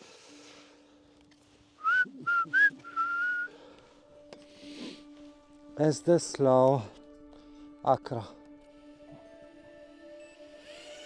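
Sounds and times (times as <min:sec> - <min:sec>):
person whistling: 0:01.8 - 0:03.6.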